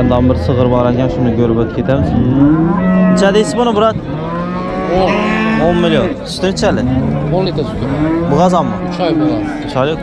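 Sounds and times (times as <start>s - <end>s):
cows mooing: 0.0s - 10.0s.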